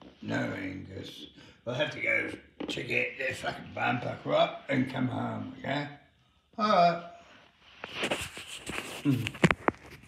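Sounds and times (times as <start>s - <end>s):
puppet handling rustle: 7.8s - 10.0s.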